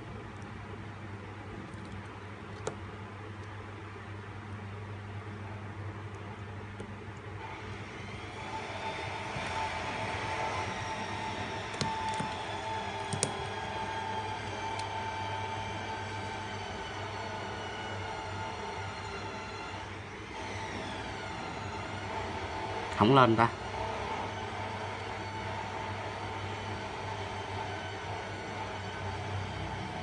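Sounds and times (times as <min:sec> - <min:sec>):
steady mechanical hum: 0:00.0 - 0:30.0.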